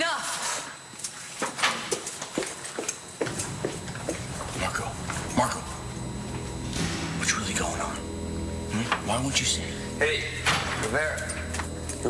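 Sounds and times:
low background score notes: 0:03.8 - 0:12.0.

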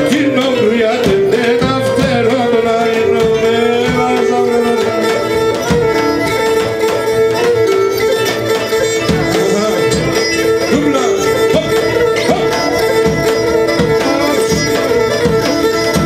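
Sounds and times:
bowed lyra melody: 0:00.0 - 0:16.0
drum beats: 0:00.0 - 0:16.0
guitar accompaniment: 0:00.0 - 0:16.0.

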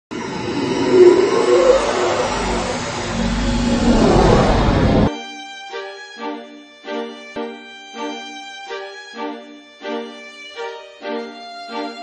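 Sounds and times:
roaring rumble intro effect: 0:00.0 - 0:05.1.

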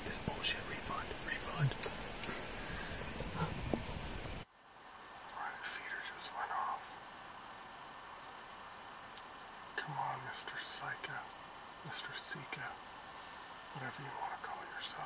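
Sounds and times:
men whispering: 0:00.0 - 0:04.0, 0:05.3 - 0:06.9, 0:09.8 - 0:12.8, 0:13.7 - 0:15.0
steady hiss: 0:00.0 - 0:15.0.

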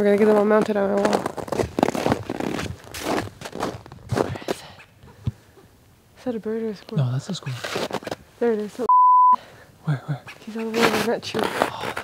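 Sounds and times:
footsteps in snow: 0:00.0 - 0:04.6, 0:07.5 - 0:08.9, 0:10.6 - 0:12.0.

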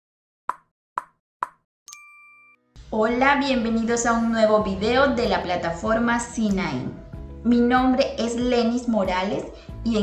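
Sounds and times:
bright ringing chime: 0:01.9 - 0:02.7.

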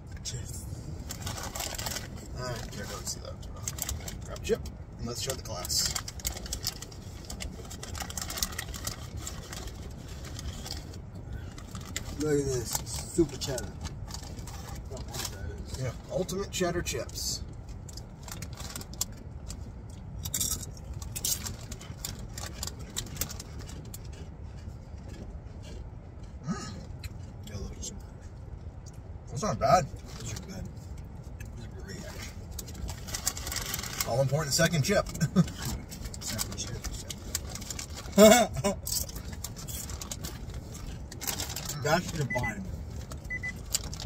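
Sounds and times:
low steady rumble: 0:00.0 - 0:44.0
chip bag crinkling: 0:01.1 - 0:15.4, 0:32.1 - 0:42.3
chips being chewed: 0:17.8 - 0:27.4, 0:35.1 - 0:42.4.

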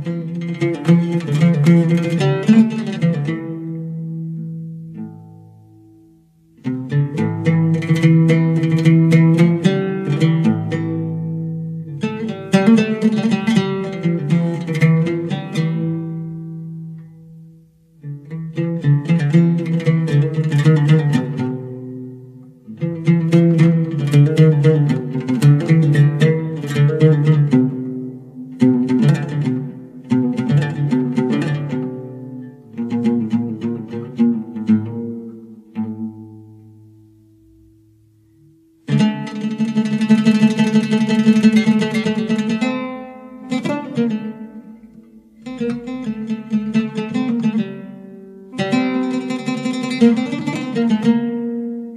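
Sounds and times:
string instrument melody: 0:00.0 - 0:51.9.

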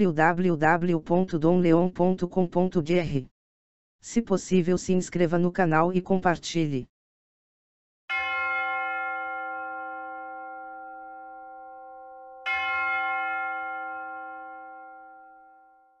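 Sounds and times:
bell chime ringing: 0:08.1 - 0:16.0.

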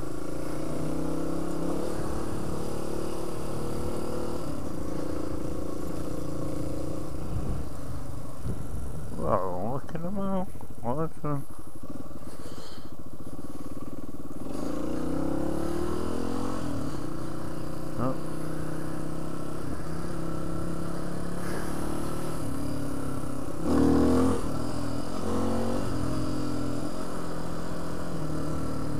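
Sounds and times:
motorcycle engine running: 0:00.0 - 0:28.9.

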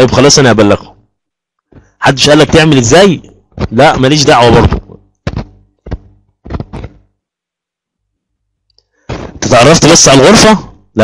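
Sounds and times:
short thuds: 0:01.7 - 0:02.0, 0:04.6 - 0:07.1, 0:09.1 - 0:09.5.

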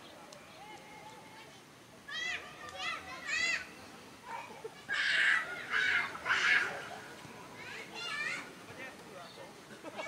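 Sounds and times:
young voices shouting: 0:04.6 - 0:08.6.

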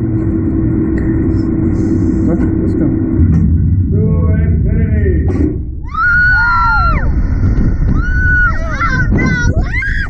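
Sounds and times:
wind rumble on microphone: 0:00.0 - 0:10.0
riders screaming: 0:05.8 - 0:10.0.

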